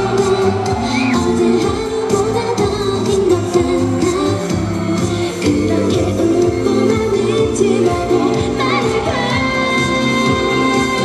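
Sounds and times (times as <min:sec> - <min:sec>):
pop song with singing: 0:00.0 - 0:11.0.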